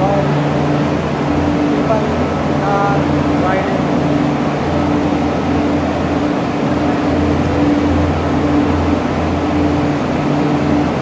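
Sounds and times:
cable car machinery humming: 0.0 - 11.0
high steady tone: 0.0 - 11.0.

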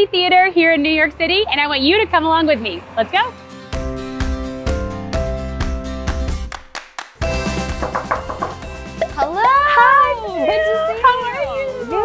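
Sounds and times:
background music: 0.0 - 12.0
women squealing excitedly: 9.2 - 12.0.

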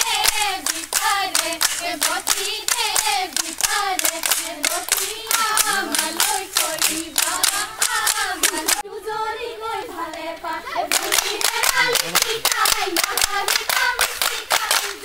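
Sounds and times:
rhythmic hand-clapping: 0.0 - 8.8, 9.8 - 15.0
women singing together: 0.0 - 15.0.

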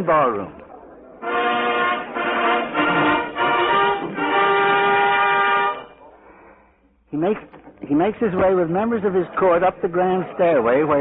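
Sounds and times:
orchestra playing held chords: 1.2 - 6.0.

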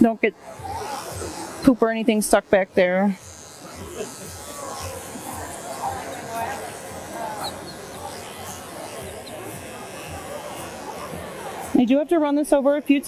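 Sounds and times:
crowd chatter: 0.0 - 13.0
pet clipper running: 0.2 - 13.0.

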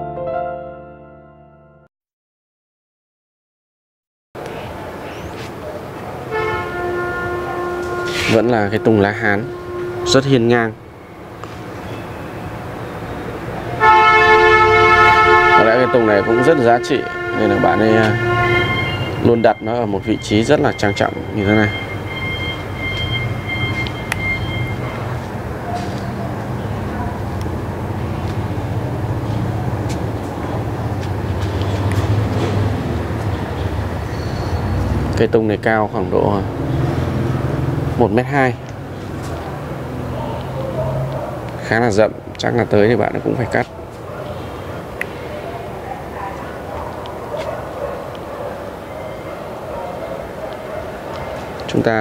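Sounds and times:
outdoor background noise: 4.4 - 52.0
faint distant voices: 42.5 - 52.0.

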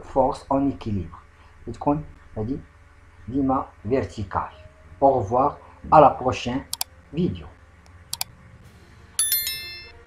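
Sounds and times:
notification bell chime: 9.2 - 10.0.

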